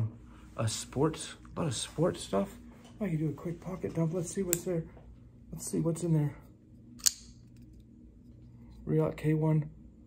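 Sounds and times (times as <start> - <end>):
folding knife snapping open: 7.0 - 7.4.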